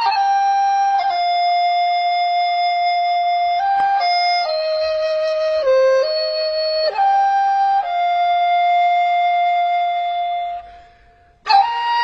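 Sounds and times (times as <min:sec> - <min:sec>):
flute holding a long note: 0:00.0 - 0:12.0.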